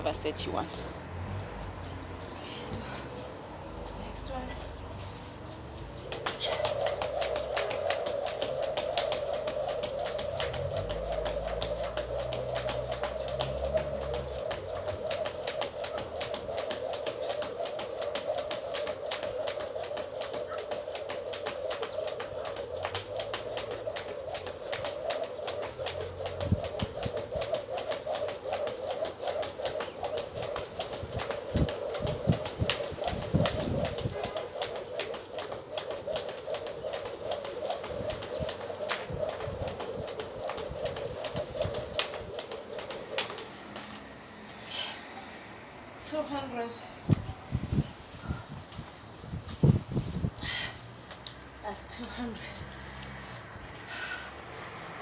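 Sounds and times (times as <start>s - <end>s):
skipping rope slapping ground: 5.7s - 44.7s, 48.7s - 53.8s.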